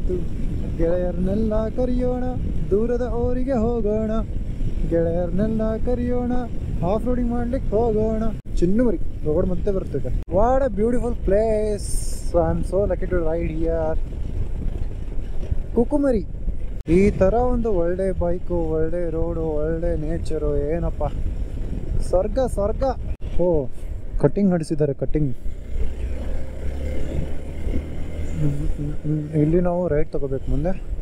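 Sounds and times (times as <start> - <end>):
man singing: 0.0 - 4.2, 4.8 - 8.4
man's voice: 0.0 - 14.0, 16.9 - 21.2, 22.0 - 25.4, 28.4 - 30.9
motorcycle engine rumble: 0.0 - 31.0
wind and road noise: 0.0 - 31.0.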